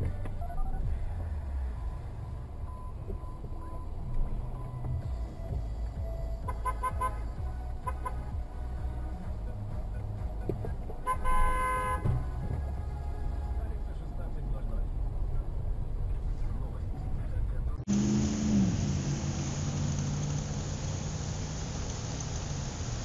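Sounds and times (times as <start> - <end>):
low engine rumble: 0.0 - 23.0
car horn: 6.4 - 8.4, 11.0 - 13.5.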